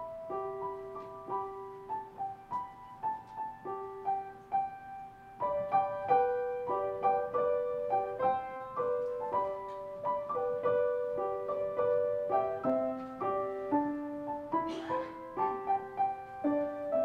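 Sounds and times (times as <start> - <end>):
solo grand piano piece: 0.0 - 17.0.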